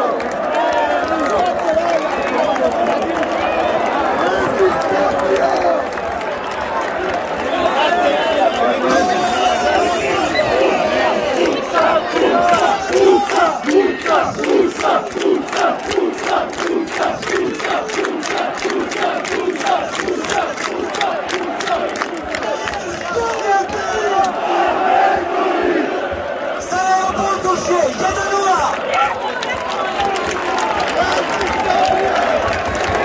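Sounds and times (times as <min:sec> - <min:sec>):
rhythmic clapping: 0:00.0 - 0:24.4, 0:28.6 - 0:33.0
crowd chanting in unison: 0:00.0 - 0:33.0.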